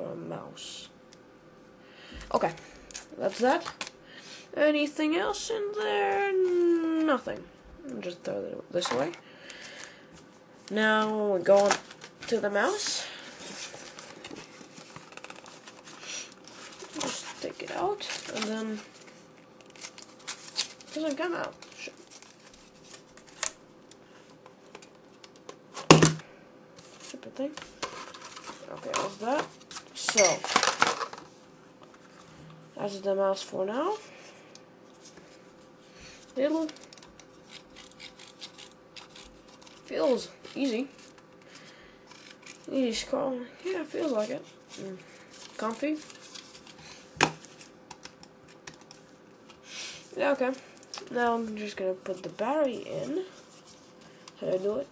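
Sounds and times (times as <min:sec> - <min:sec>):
hard plastic packaging handled: 0:10.7 - 0:23.6, 0:26.8 - 0:32.2.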